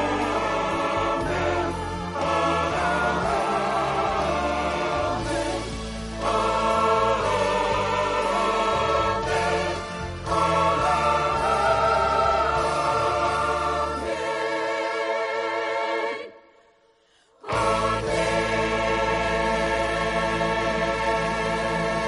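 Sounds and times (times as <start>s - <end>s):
orchestral accompaniment: 0.0s - 15.3s
choir singing gospel: 0.0s - 16.6s, 17.3s - 22.0s.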